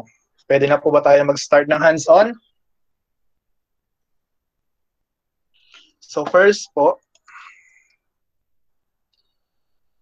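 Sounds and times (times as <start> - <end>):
breathy whisper: 7.2 - 8.2.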